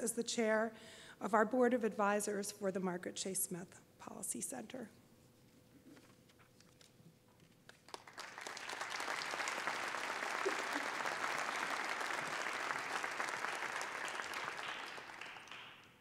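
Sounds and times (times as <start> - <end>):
audience applauding: 7.8 - 16.0.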